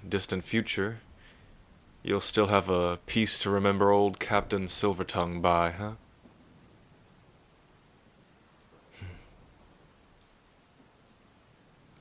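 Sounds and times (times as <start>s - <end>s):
faint steady rain: 0.0s - 12.0s.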